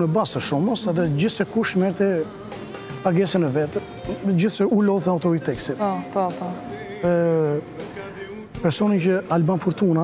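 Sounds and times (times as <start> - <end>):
held tone background music: 0.0 - 10.0
man speaking: 3.0 - 5.9, 6.8 - 7.8.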